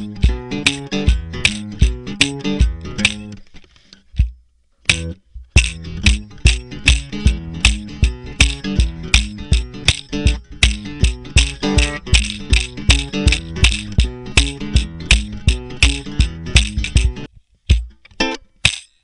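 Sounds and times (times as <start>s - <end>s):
stomp box thuds with rattle: 0.0s - 3.3s, 4.2s - 18.0s
guitar playing: 0.0s - 4.0s, 4.8s - 18.6s.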